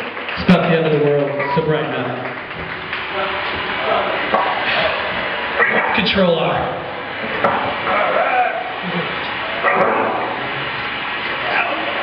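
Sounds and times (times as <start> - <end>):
indistinct talking: 0.0 - 12.0.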